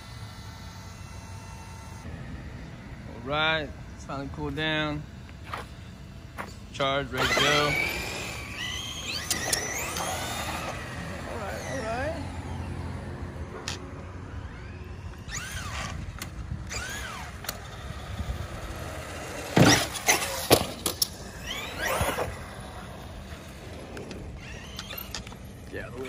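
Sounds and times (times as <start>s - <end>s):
toy truck motor whine: 0.0s - 26.0s.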